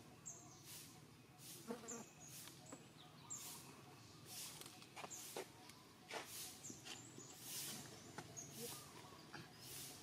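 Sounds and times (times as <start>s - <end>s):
small birds chirping: 0.0s - 10.0s
insect buzzing: 1.5s - 2.1s.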